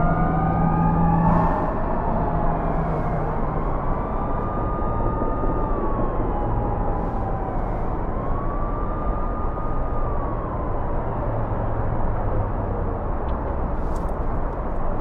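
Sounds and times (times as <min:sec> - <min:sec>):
distant siren wailing: 0:00.0 - 0:12.6.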